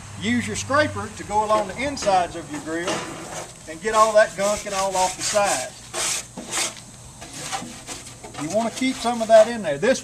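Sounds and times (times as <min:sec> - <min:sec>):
scraper scraping grill walls: 0:01.1 - 0:10.0.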